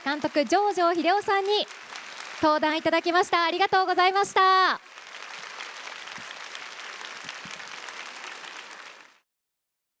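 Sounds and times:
audience applauding: 0:00.0 - 0:09.2.

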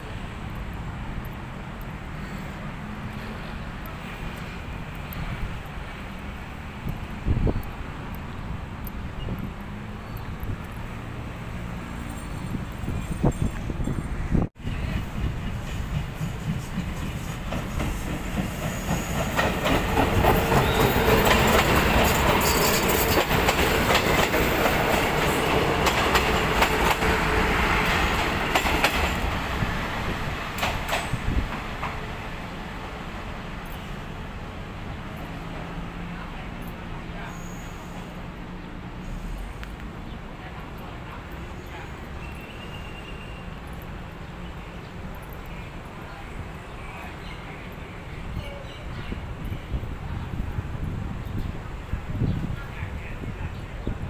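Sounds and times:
low outdoor station noise: 0:00.0 - 0:54.0
train wheels clacking over rail joints: 0:15.2 - 0:29.4.

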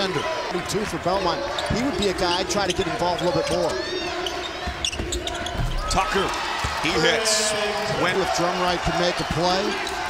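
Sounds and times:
sneaker squeaks: 0:01.2 - 0:06.1.

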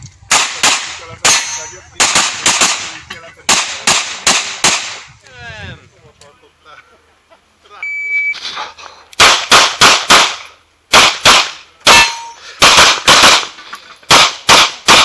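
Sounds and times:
rapid pistol fire: 0:00.3 - 0:02.9, 0:03.5 - 0:05.1, 0:09.2 - 0:15.0.

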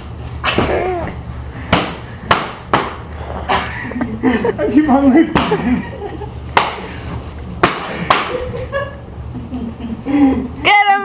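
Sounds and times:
foam axes whacking: 0:00.0 - 0:03.1, 0:05.3 - 0:05.7, 0:06.5 - 0:06.9, 0:07.6 - 0:08.4.

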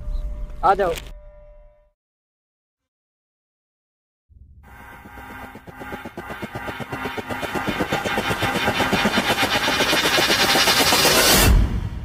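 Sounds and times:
fast-pulsing drone riser: 0:04.6 - 0:12.0.

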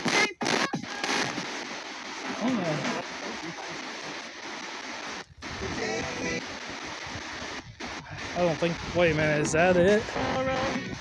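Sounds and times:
radio static hiss: 0:00.0 - 0:11.0
snatches of radio voices: 0:00.0 - 0:11.0.

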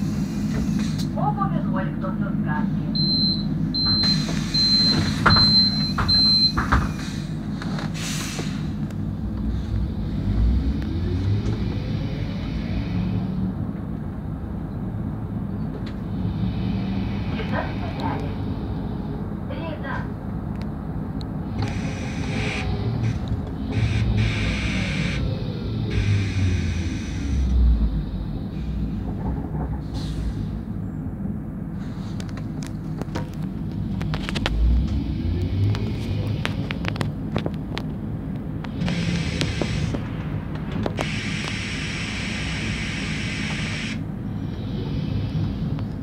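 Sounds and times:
bus body and road rumble: 0:00.0 - 0:46.0.

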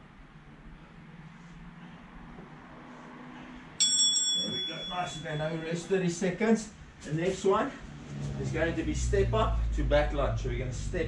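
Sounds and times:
bell-like timer alarm: 0:03.8 - 0:05.9.

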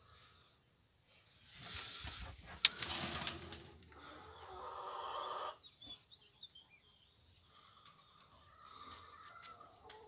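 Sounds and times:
bird wings fluttering: 0:02.6 - 0:03.8.

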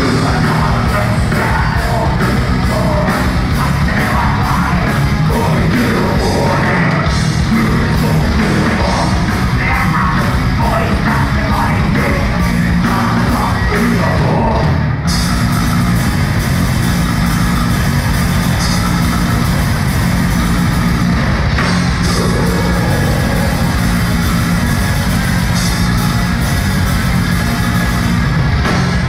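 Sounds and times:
heavy metal band playing live: 0:00.0 - 0:29.0.

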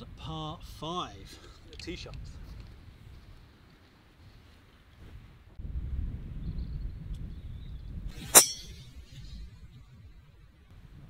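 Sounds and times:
golf club striking ball: 0:08.2 - 0:09.4.

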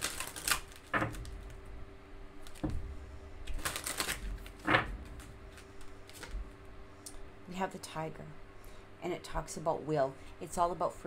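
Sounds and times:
cards being shuffled: 0:00.0 - 0:01.6, 0:03.4 - 0:06.6.

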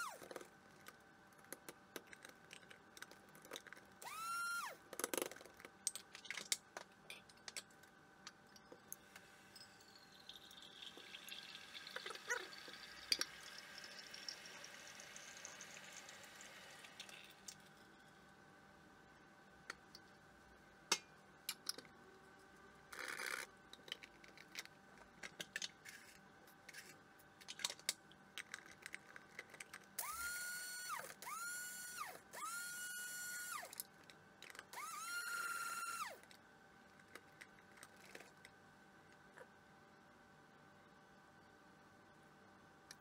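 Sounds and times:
small electric motor whining: 0:00.0 - 0:00.3, 0:04.0 - 0:04.8, 0:30.0 - 0:33.8, 0:34.7 - 0:36.2.

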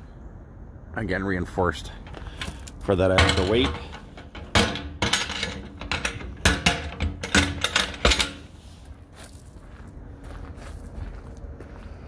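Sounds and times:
metal latch clicks and clanks: 0:02.0 - 0:08.5.

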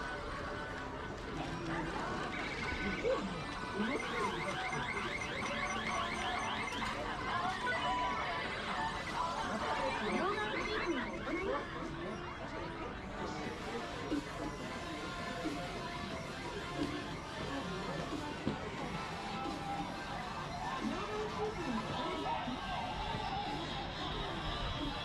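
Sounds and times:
background music: 0:00.0 - 0:21.1
people talking walking past: 0:00.0 - 0:25.0.

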